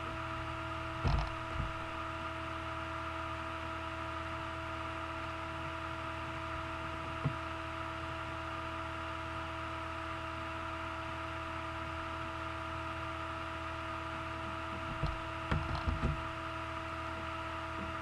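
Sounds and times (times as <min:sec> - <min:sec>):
electrical hum: 0:00.0 - 0:18.0.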